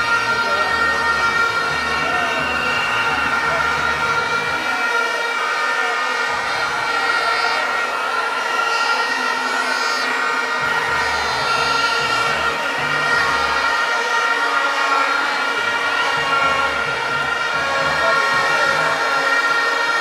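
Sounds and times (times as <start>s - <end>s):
crowd noise: 0.0s - 20.0s
steady blaring tones: 0.0s - 20.0s.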